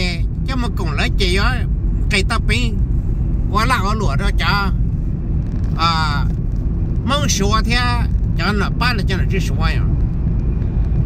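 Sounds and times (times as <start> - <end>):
man talking: 0.0 - 2.8, 3.5 - 4.8, 5.8 - 6.4, 7.0 - 9.9
road and engine rumble: 0.0 - 11.0.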